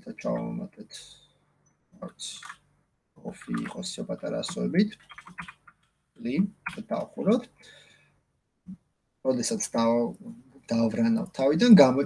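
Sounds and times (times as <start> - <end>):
person speaking: 0.0 - 1.1, 2.0 - 2.6, 3.2 - 5.6, 6.2 - 7.6
computer keyboard tapping: 3.4 - 3.8, 4.5 - 5.9.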